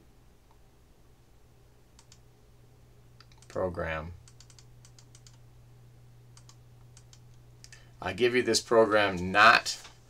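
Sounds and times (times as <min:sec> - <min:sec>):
low steady hum: 0:00.0 - 0:10.0
computer keys clicking: 0:01.9 - 0:02.2, 0:03.2 - 0:03.6, 0:04.2 - 0:05.4, 0:06.3 - 0:07.8.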